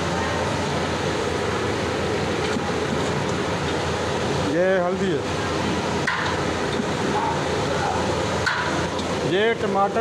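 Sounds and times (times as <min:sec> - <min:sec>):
hissing rush of pot cooking: 0:00.0 - 0:10.0.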